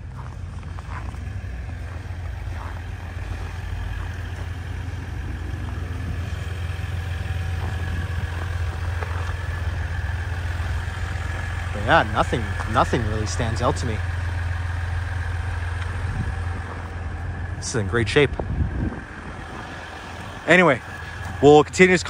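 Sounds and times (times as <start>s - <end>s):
diesel engine idling: 0.0s - 22.0s.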